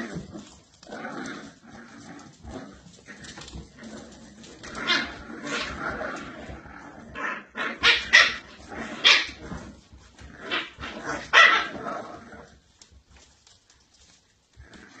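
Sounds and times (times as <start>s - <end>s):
puppies growling: 0.0s - 15.0s
puppies barking: 4.5s - 12.1s.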